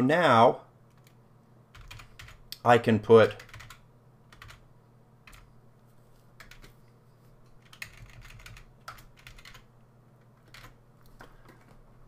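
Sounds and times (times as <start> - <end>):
faint keyboard typing: 0.9 - 12.0.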